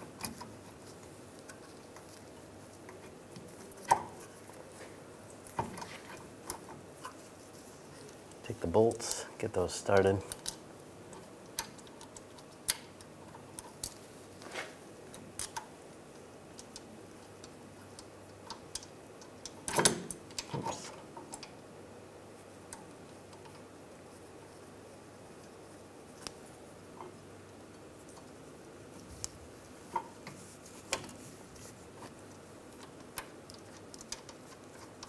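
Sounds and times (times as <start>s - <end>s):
small metallic clicks and taps: 10.2s - 14.0s, 15.1s - 21.6s, 32.3s - 35.0s.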